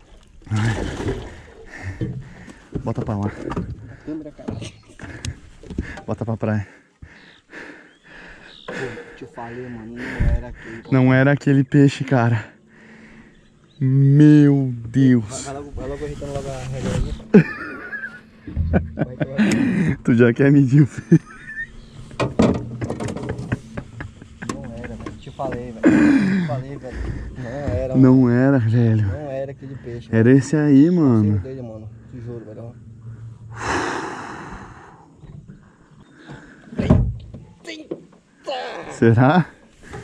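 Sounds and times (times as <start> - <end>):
man murmuring: 24.4 - 27.9.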